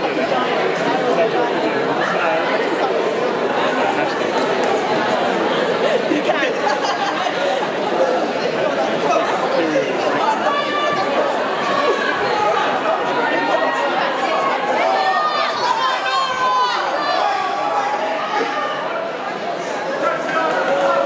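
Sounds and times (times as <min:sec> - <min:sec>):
crowd chattering: 0:00.0 - 0:21.0.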